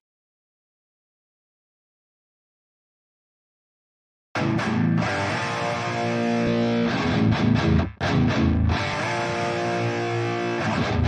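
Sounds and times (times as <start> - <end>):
distorted metal rhythm guitar: 4.4 - 11.0.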